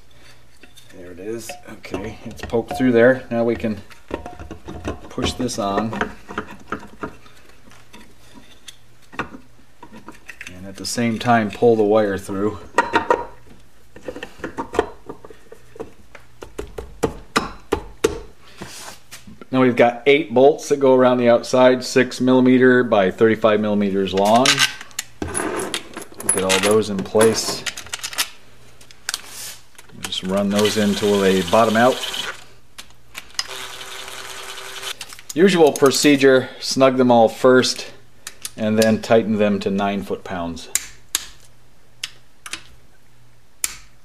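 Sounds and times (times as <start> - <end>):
cordless driver motor whir: 30.6 - 32.4, 33.4 - 35.0.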